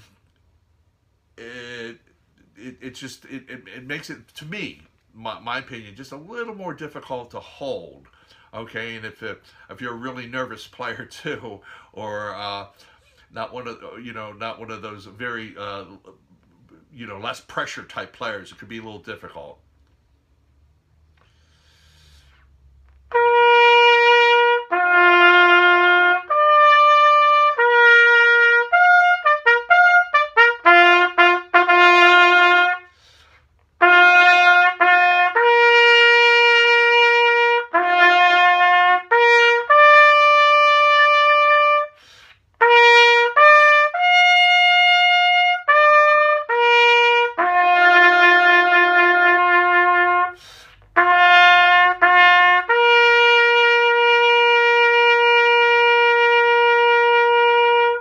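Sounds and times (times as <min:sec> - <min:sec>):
bugle call: 0:33.8 - 0:42.0, 0:42.6 - 0:50.4.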